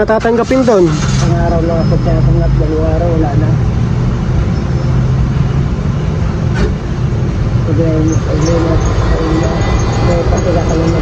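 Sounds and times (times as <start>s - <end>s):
road traffic noise: 0.0s - 11.0s
vehicle engine humming: 0.0s - 11.0s.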